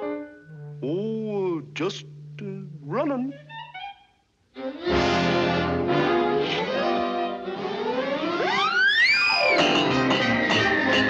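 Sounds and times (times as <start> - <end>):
cartoon orchestral music: 4.6 - 11.0.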